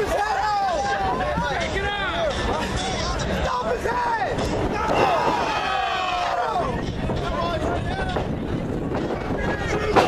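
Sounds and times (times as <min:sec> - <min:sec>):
faint voices calling out: 0:00.0 - 0:10.0
wind on microphone: 0:00.9 - 0:10.0.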